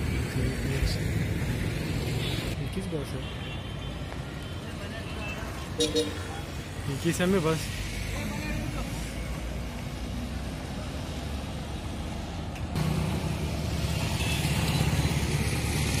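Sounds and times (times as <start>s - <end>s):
street noise with vehicle engines: 0.0s - 16.0s
engine running close by: 12.8s - 16.0s.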